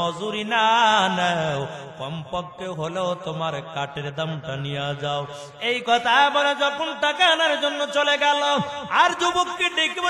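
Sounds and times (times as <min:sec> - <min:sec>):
man chanting through microphones: 0:00.0 - 0:10.0.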